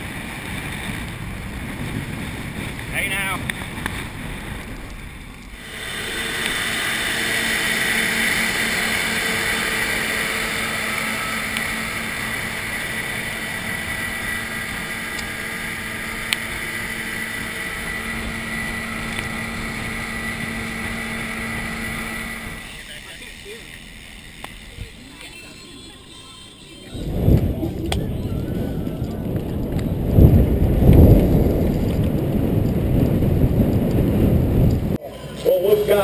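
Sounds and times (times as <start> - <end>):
wind rushing over microphone: 0.0 - 22.7, 26.9 - 35.0
steady hum: 0.0 - 31.5.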